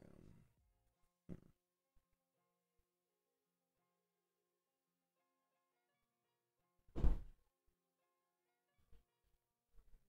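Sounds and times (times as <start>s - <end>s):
single thump: 7.0s - 7.3s.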